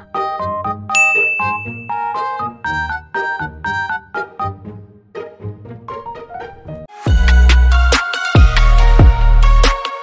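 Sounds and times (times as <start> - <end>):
bright bell-like ding: 0.9 - 2.6.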